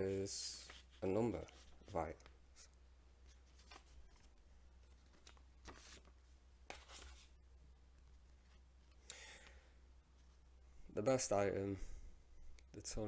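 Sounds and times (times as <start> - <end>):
paper envelope rustling: 3.3 - 7.3.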